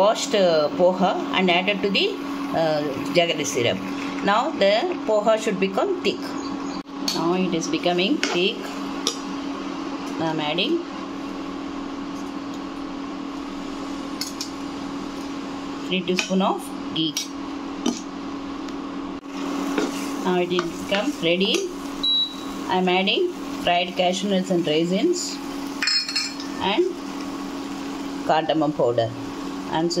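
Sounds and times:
cooling fan humming: 0.0s - 30.0s.

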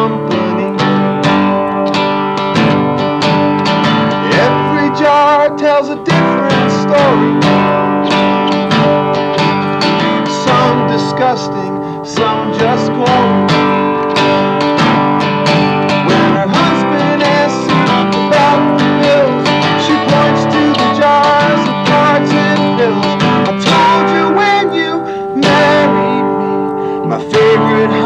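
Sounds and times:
acoustic guitar strummed: 0.0s - 28.0s.

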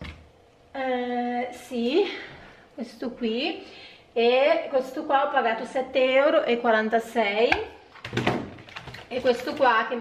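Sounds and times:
plastic wrap crackling: 8.0s - 9.9s.

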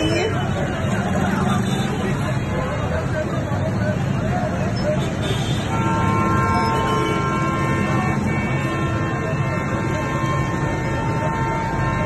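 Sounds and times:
street crowd hubbub: 0.0s - 12.0s.

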